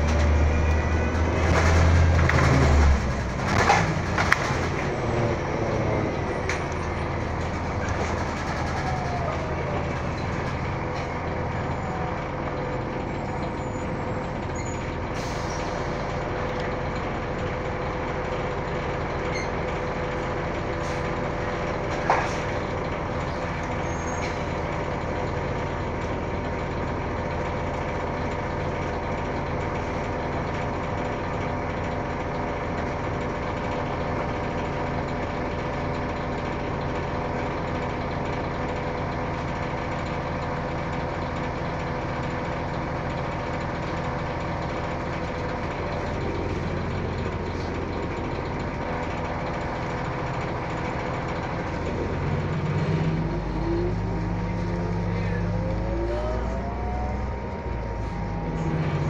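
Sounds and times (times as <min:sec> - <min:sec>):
constant whine: 0:00.0 - 0:35.7, 0:36.4 - 0:59.0
bus engine and drivetrain hum: 0:00.0 - 0:59.0.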